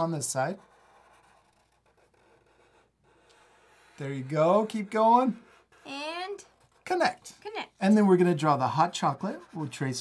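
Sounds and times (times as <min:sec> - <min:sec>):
marker scratching on paper: 0:00.0 - 0:07.4, 0:08.3 - 0:10.0.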